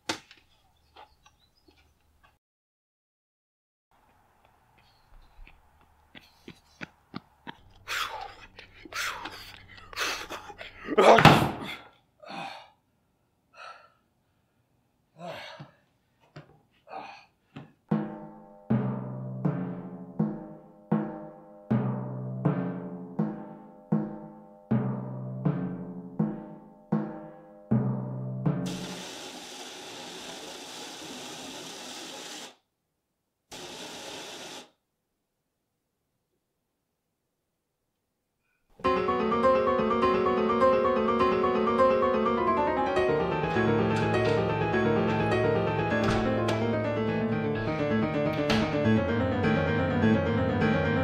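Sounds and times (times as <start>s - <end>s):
man breathing hard: 7.7s - 11.0s, 13.5s - 14.1s, 15.2s - 16.0s
garden hose spraying water: 28.7s - 32.6s, 33.5s - 34.7s.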